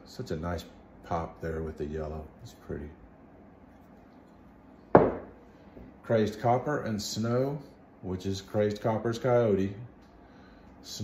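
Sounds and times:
ceramic mug knocking on wood: 5.0s - 5.4s.

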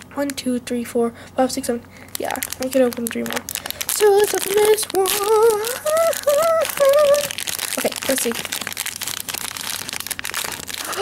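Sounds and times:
foil packet crinkling and tearing: 2.0s - 11.0s
person humming a tune: 4.0s - 7.4s, 10.8s - 11.0s.

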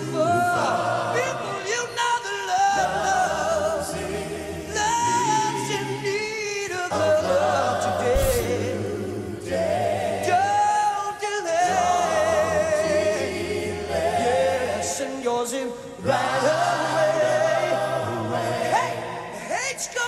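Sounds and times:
a cappella group singing: 0.0s - 20.0s.

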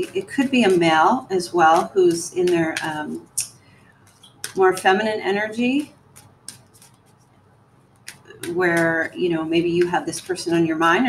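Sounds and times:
cards being shuffled: 1.7s - 5.0s, 6.0s - 7.3s, 8.0s - 8.9s.

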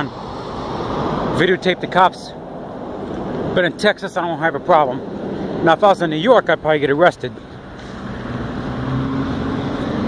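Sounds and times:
road noise: 0.0s - 10.0s
vehicle engine hum: 0.0s - 10.0s.

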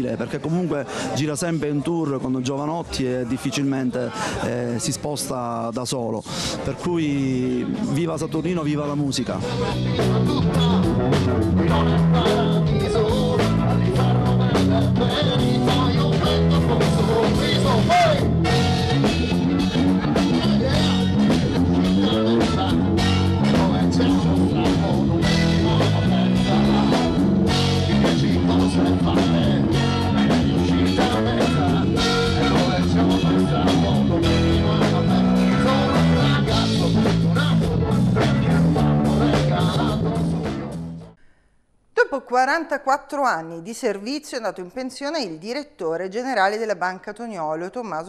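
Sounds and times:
drums: 7.6s - 41.2s
man singing into microphone: 8.6s - 40.2s
electric guitar: 9.4s - 41.1s.

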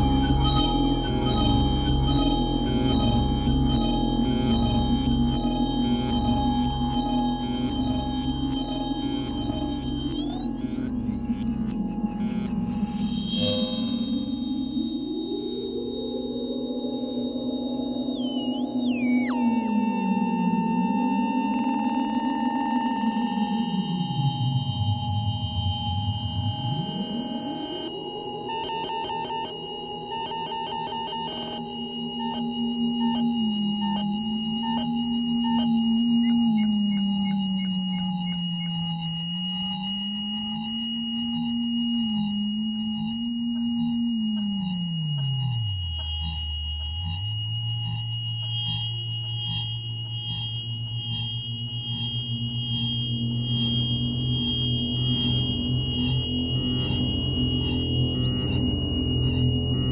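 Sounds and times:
high feedback whistling tones: 0.0s - 59.9s
evenly spaced ticks: 30.3s - 59.6s.

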